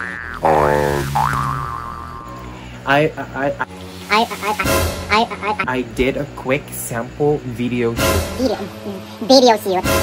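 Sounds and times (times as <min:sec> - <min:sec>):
comic boing sound effect: 0:00.0 - 0:02.4
low music bed: 0:00.4 - 0:10.0.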